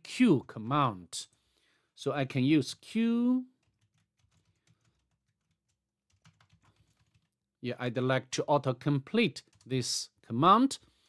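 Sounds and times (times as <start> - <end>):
keyboard typing: 3.6 - 7.4.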